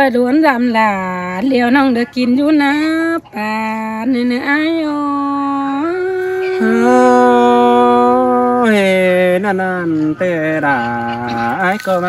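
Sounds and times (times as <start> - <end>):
folk singing with held notes: 2.6 - 12.0.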